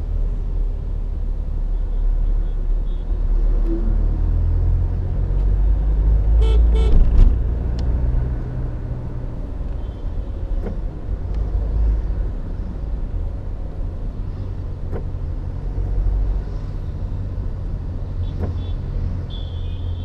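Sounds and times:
vehicle engine and road rumble: 0:00.0 - 0:20.0.

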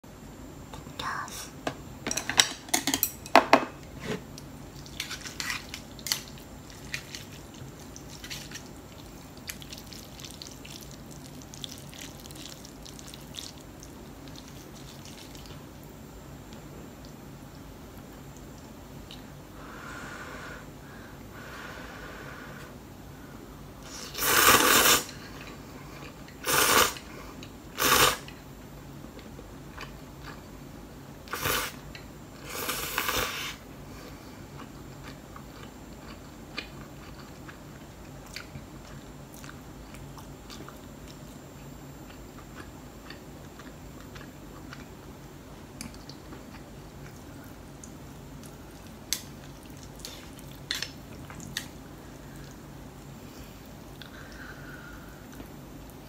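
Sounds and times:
chewing with small clicks: 0:34.6 - 0:45.0, 0:45.8 - 0:53.1.

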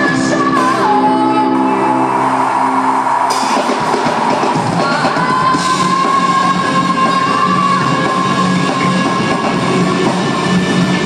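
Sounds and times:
woman singing lead vocal: 0:00.0 - 0:02.0, 0:04.6 - 0:10.2
drum kit: 0:00.0 - 0:11.0
electric guitars: 0:00.0 - 0:11.0.

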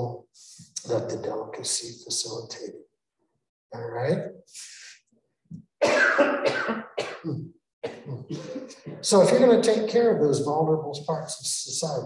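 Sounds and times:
man speaking muffled: 0:00.0 - 0:02.8, 0:03.8 - 0:04.9, 0:08.0 - 0:12.0.

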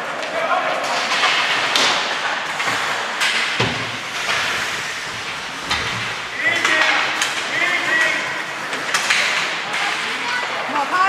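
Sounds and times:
skate blades scraping ice: 0:00.8 - 0:10.5.

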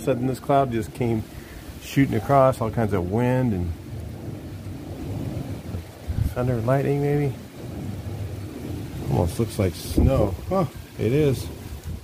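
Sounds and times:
storm wind gusting: 0:00.0 - 0:12.0
wind rumble on microphone: 0:00.0 - 0:12.0.

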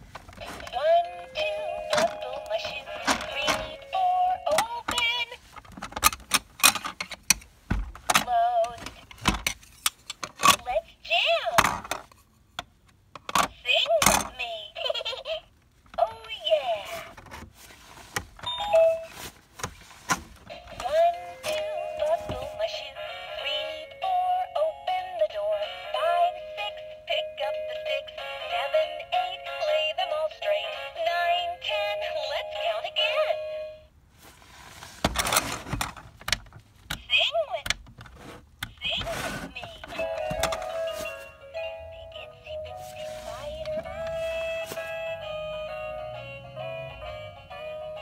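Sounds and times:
toy radio playing children's song: 0:00.4 - 0:05.4, 0:08.1 - 0:09.1, 0:10.4 - 0:11.7, 0:13.3 - 0:17.1, 0:18.5 - 0:19.1, 0:20.5 - 0:33.9, 0:38.7 - 0:48.0.

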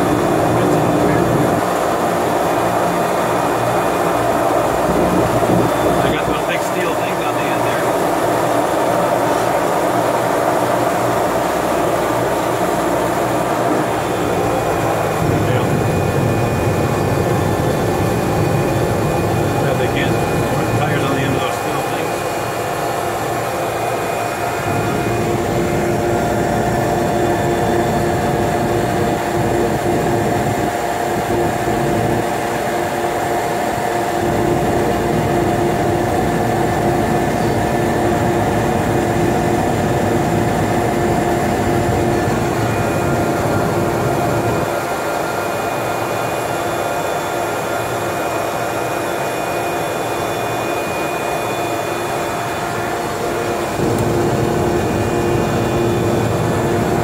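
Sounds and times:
turboprop engine drone: 0:00.0 - 0:57.0.

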